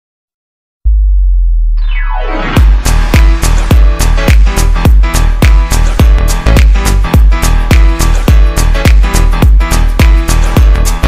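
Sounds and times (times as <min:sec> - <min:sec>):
deep synth bass note: 0:00.8 - 0:08.7
high synth sweep gliding down: 0:01.7 - 0:03.6.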